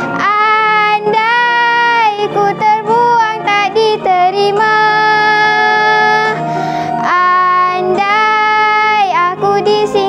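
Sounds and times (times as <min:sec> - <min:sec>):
girl singing: 0:00.0 - 0:06.4, 0:07.0 - 0:10.0
backing track music: 0:00.0 - 0:10.0.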